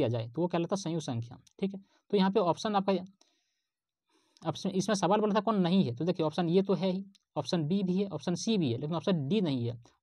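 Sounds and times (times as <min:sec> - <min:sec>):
person speaking in a lecture: 0:00.0 - 0:03.2, 0:04.4 - 0:10.0.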